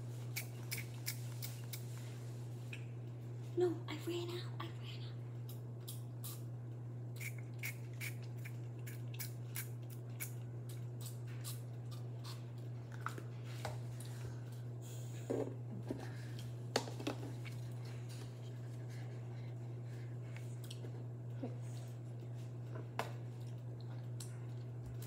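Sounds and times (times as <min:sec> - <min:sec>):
steady low hum: 0:00.0 - 0:25.0.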